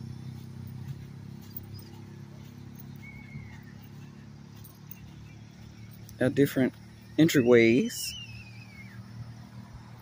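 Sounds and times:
distant traffic hum: 0.0 - 10.0
thin falling whistle: 7.6 - 9.1.

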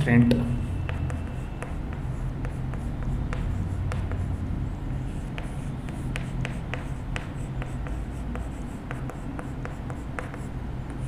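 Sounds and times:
chalk tapping and scraping: 0.0 - 11.0.

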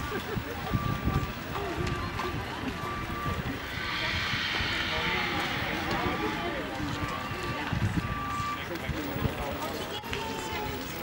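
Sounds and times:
people talking indistinctly: 0.0 - 11.0
low irregular rumble: 1.4 - 9.2.

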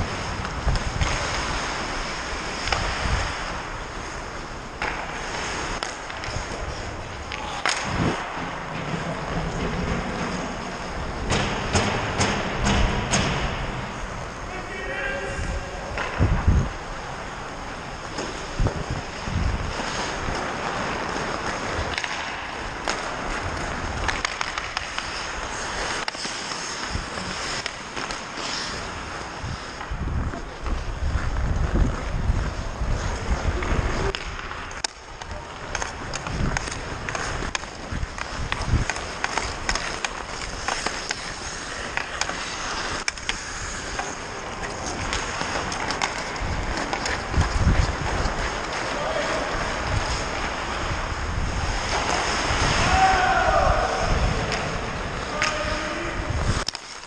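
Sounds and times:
wind rumble on microphone: 0.0 - 2.0, 7.8 - 8.3, 15.2 - 17.2, 18.4 - 20.4, 29.3 - 34.4, 35.2 - 39.0, 46.3 - 56.7
hockey sticks and puck clacking: 0.0 - 57.0
ice skate blades scraping ice: 0.0 - 57.0.

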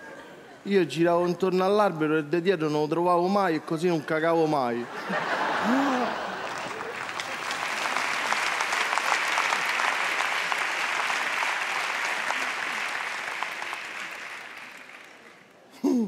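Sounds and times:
studio audience applauding: 5.6 - 15.6.

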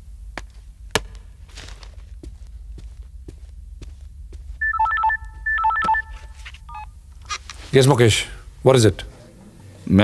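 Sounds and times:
phone ringtone beeping melody: 4.6 - 6.8.

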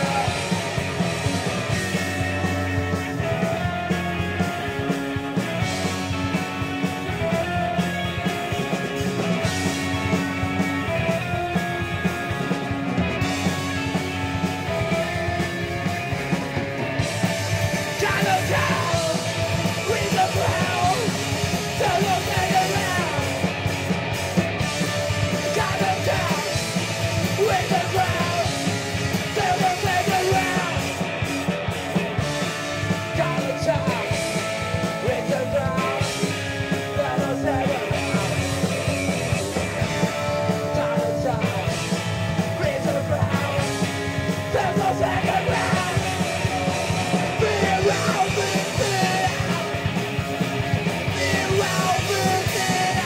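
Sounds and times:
person singing lead vocal: 0.0 - 12.6, 13.2 - 23.7, 24.6 - 31.2, 32.0 - 53.0
drums: 0.0 - 53.0
electric guitars: 0.0 - 53.0.

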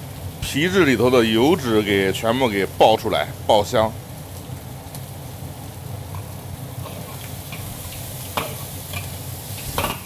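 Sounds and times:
meat sizzling in oil in a wok: 0.0 - 2.8, 3.4 - 10.0.

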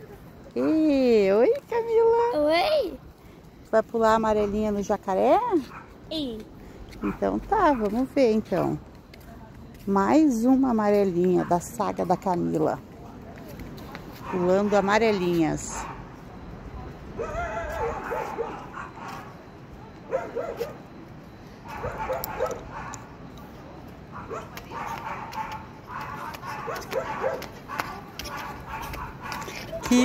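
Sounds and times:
dog yelping and barking: 17.2 - 19.2, 20.1 - 20.8, 21.7 - 23.0, 24.2 - 29.8.

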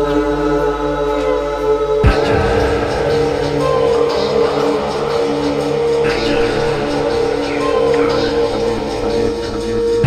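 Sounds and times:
ambient chillout music: 0.0 - 10.0.

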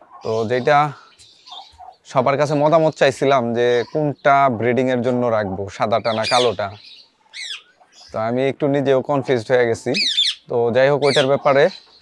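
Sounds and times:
man speaking: 0.2 - 1.1, 2.1 - 6.8, 8.1 - 11.9
parakeet call: 6.0 - 8.2, 9.9 - 11.5.

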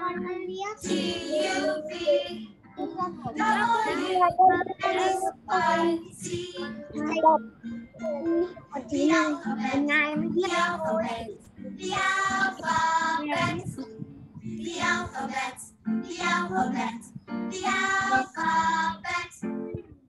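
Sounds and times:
child singing: 0.0 - 7.4, 8.0 - 19.4
children's song music: 0.0 - 20.0.

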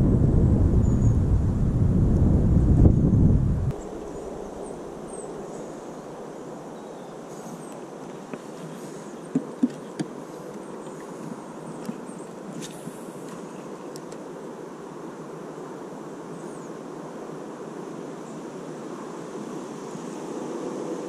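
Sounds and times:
wind noise on microphone: 0.0 - 5.5.

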